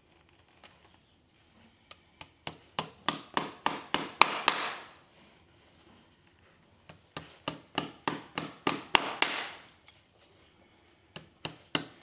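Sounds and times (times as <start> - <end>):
hammer nailing horseshoe: 2.2 - 5.0, 6.9 - 9.7, 11.2 - 12.0.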